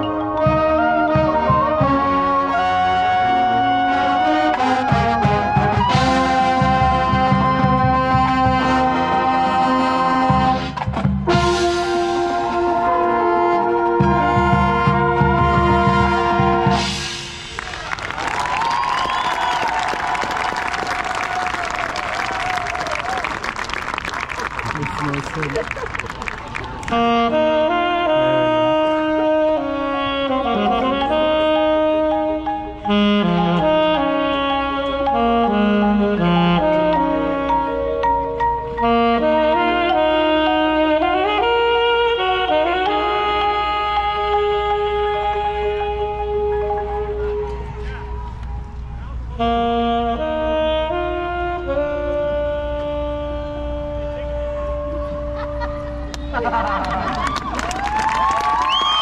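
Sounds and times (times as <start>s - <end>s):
brass chords: 0.0s - 17.8s, 26.4s - 48.4s, 49.0s - 57.1s
winds playing a melody: 0.0s - 59.0s.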